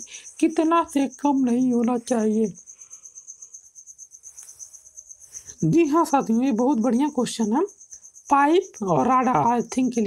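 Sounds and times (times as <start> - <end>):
cricket chirping: 0.0 - 10.0
person speaking: 8.8 - 9.7.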